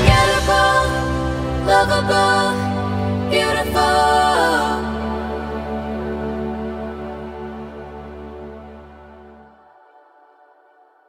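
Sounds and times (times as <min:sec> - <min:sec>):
pop ballad instrumental chord: 0:00.0 - 0:07.6.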